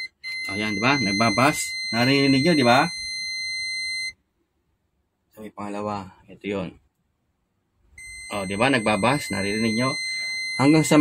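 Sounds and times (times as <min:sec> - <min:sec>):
multimeter continuity beep: 0:00.0 - 0:04.2, 0:08.0 - 0:11.0.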